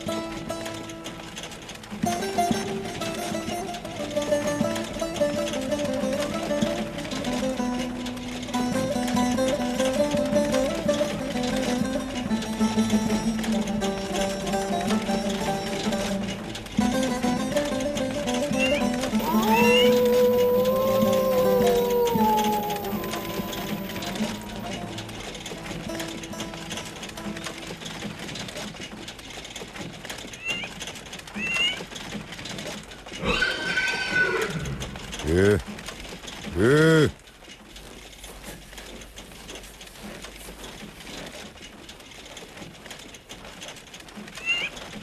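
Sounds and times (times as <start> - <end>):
film music: 13.6 - 27.8
man shouting: 19.2 - 24.1, 35.2 - 35.6, 36.5 - 37.1.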